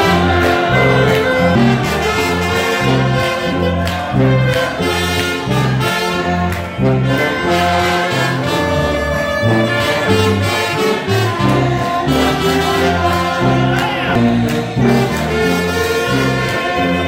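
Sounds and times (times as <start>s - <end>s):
gospel music with horns: 0.0s - 17.0s
steady bass line: 0.0s - 17.0s.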